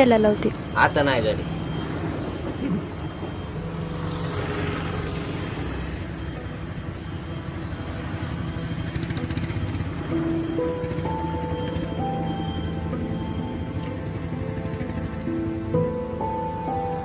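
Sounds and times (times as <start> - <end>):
road noise: 0.0 - 17.0
vehicle engine passing: 0.0 - 17.0.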